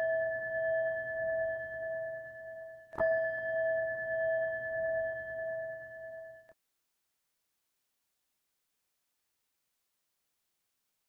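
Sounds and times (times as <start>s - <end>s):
metal bell ringing: 0.0s - 1.6s, 3.0s - 6.5s.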